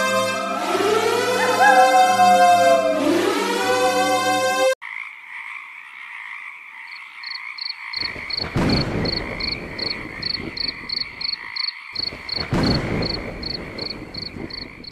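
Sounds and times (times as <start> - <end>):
string music: 0.0 - 4.8
frog calls: 4.8 - 14.9
insects chirring: 4.8 - 14.9.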